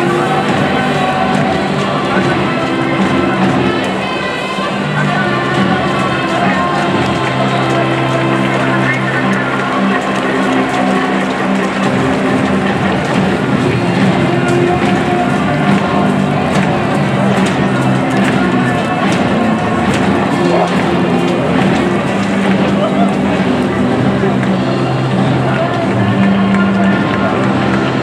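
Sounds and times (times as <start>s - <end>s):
crowd noise: 0.0s - 28.0s
music over public address system: 0.0s - 28.0s.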